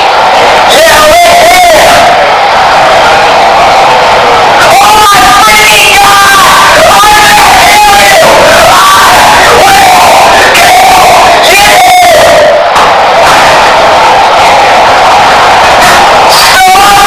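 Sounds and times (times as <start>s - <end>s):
boy screaming distorted: 0.7s - 2.2s, 4.6s - 12.6s, 16.3s - 17.0s.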